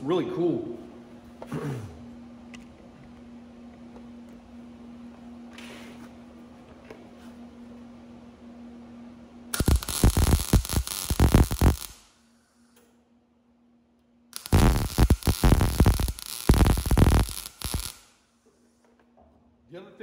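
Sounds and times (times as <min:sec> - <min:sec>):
welder arc crackling: 0:09.5 - 0:12.2, 0:14.3 - 0:18.2.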